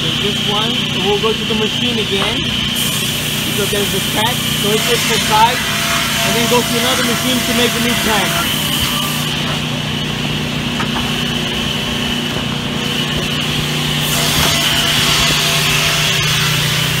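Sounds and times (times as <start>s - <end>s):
woodworking machinery humming: 0.0s - 17.0s.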